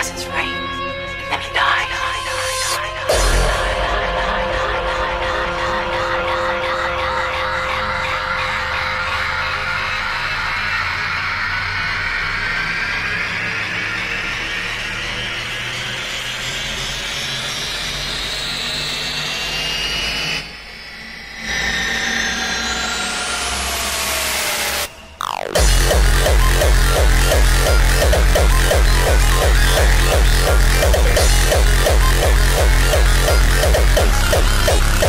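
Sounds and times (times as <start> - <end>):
sustained bass drone: 0.0 - 35.0
rising synth tones: 19.4 - 35.0
upward synth sweep: 20.4 - 35.0.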